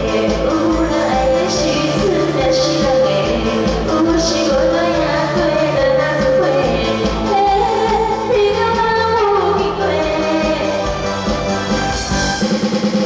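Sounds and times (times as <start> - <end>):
woman singing pop song: 0.0 - 11.2
backing band track with beat: 0.0 - 13.0.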